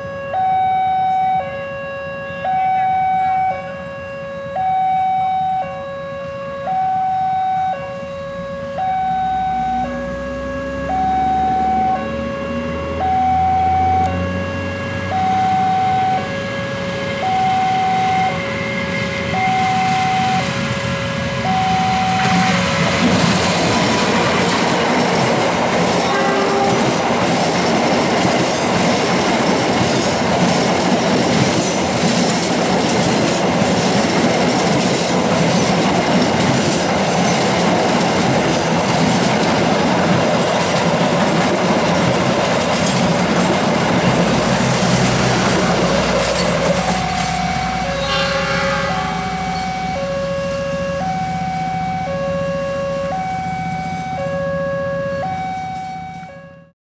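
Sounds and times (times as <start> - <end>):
level-crossing alarm: 0.0 - 30.9, 45.4 - 56.7
train rumbling past: 6.7 - 54.1
train wheels clicking on rail joints: 21.5 - 49.9.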